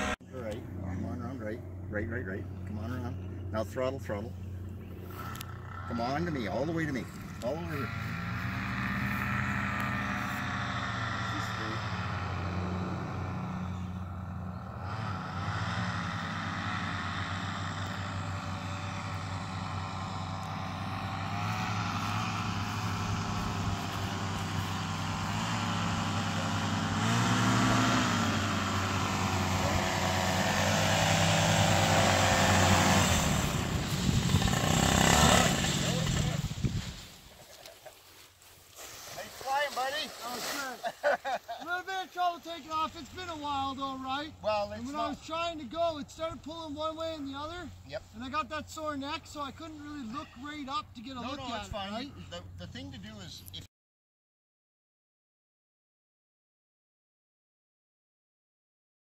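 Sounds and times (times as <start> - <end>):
two-stroke paramotor engine revving: 0.0 - 3.8, 4.8 - 37.1.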